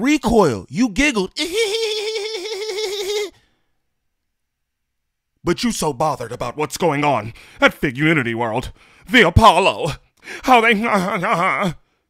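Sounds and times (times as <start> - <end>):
high pulsing laugh: 1.5 - 3.4.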